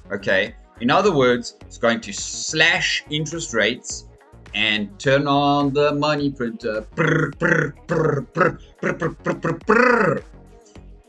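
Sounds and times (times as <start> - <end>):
man making wordless vocal noises: 0.0 - 10.4.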